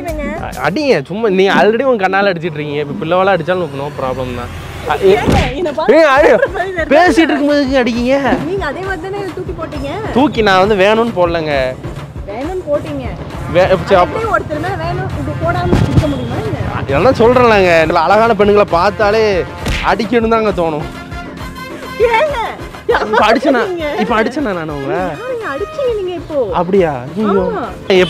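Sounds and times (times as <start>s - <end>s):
deep thud: 5.2s - 5.7s.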